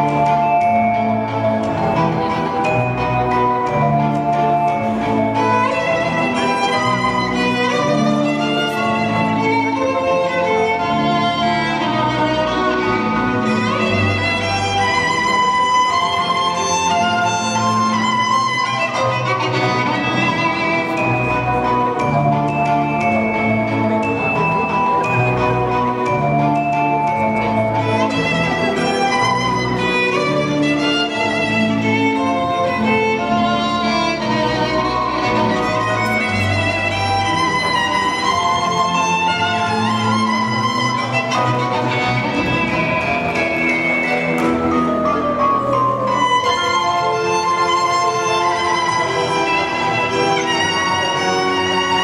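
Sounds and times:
ballroom dance music: 0.0s - 52.0s
string accompaniment: 0.0s - 52.0s
violin long held notes: 0.0s - 52.0s.

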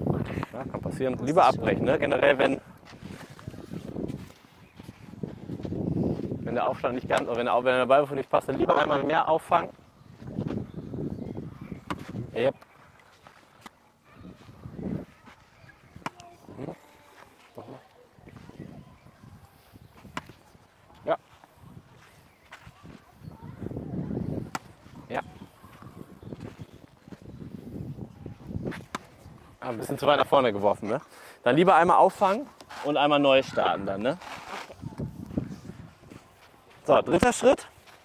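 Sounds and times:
soft voices: 12.6s - 26.2s.

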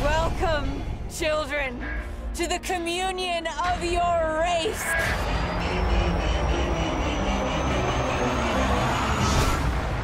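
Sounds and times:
low rumbling drone: 4.8s - 10.0s
whoosh: 7.3s - 10.0s.

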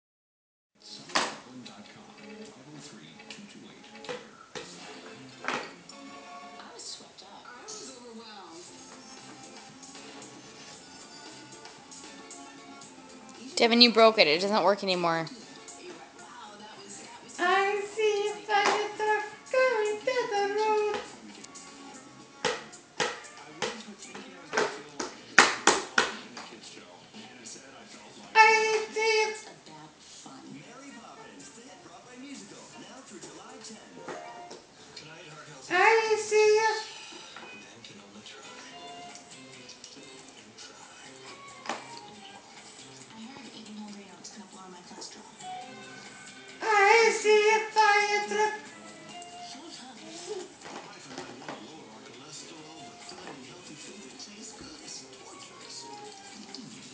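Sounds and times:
faint television speech: 0.8s - 56.9s
television music: 0.8s - 56.9s
hands slapping plastic toy: 24.5s - 26.5s.

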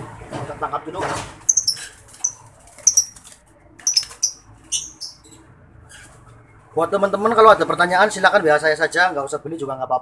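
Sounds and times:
bird shrill squawks: 1.5s - 3.2s, 3.8s - 5.3s.

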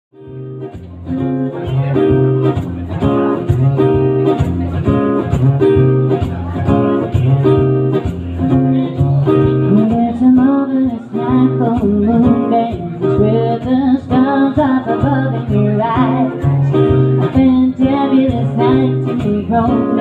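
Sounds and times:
acoustic guitar strumming: 0.2s - 20.0s.

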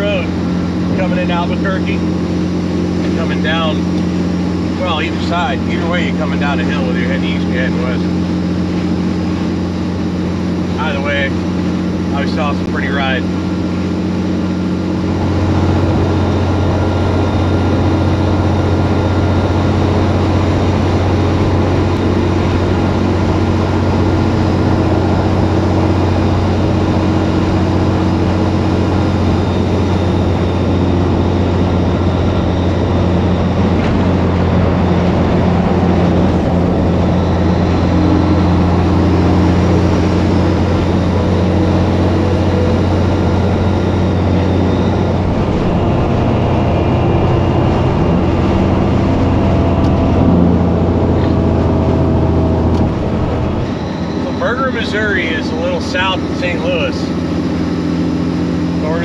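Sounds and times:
diesel truck engine cruising: 0.0s - 59.0s
road and wind noise: 0.0s - 59.0s.

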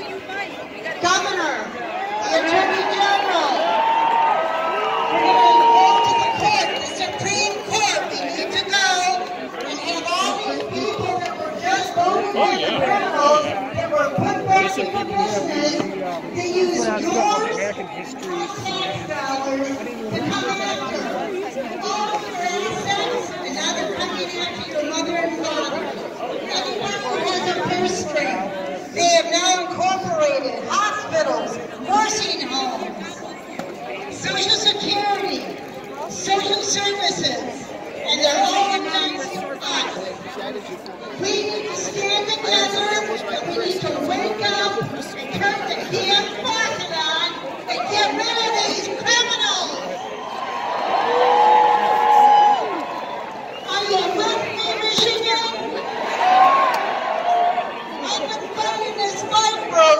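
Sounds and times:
crowd chatter: 0.0s - 59.9s.

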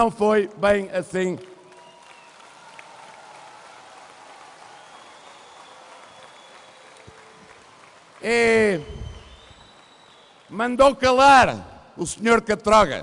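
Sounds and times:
distant audience applause: 1.5s - 10.6s.

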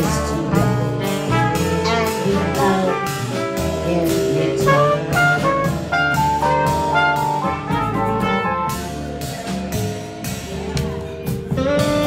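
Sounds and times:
trumpet melody: 0.0s - 9.4s, 11.5s - 12.0s
drums with cymbals: 0.0s - 12.0s
jazz band playing: 0.0s - 12.0s.

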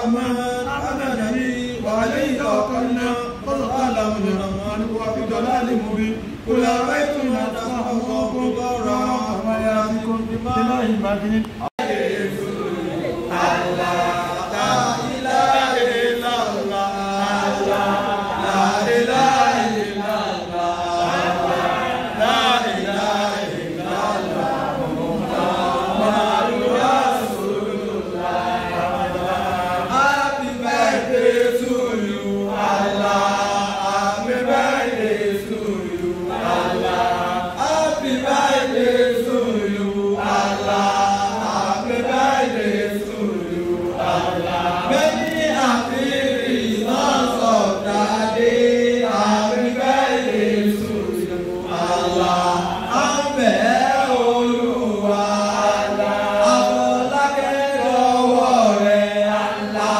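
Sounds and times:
voices singing chant-like melody: 0.0s - 59.9s.

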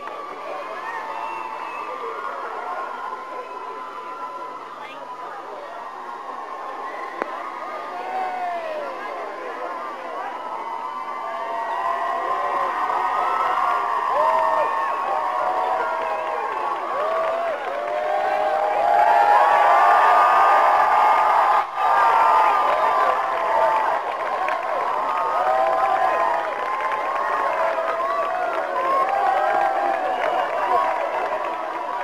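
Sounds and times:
crowd cheering and shouting: 0.0s - 32.0s.

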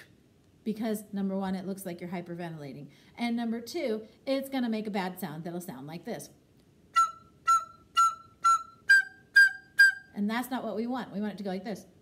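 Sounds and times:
shrill overblown recorder notes: 6.9s - 10.2s.

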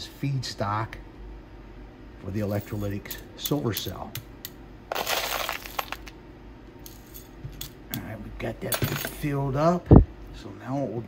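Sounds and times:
metal granules rattling into cup: 4.9s - 6.1s.

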